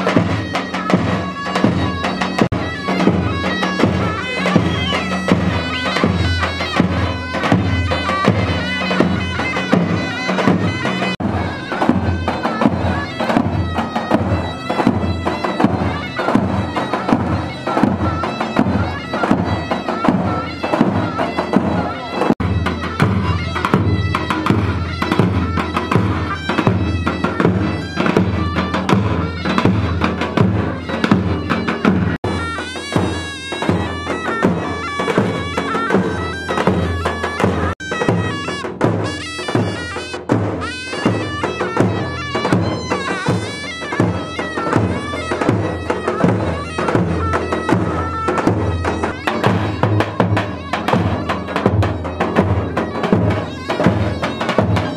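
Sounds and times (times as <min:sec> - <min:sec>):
shrill reedy double-reed melody: 0:00.0 - 0:54.9.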